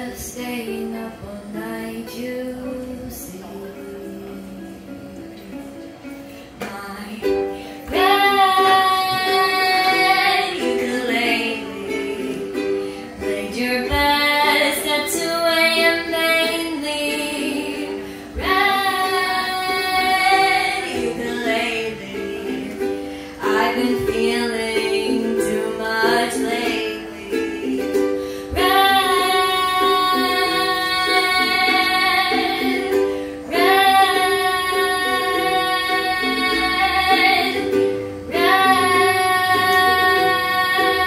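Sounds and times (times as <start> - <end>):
strummed ukulele: 0.0 - 41.0.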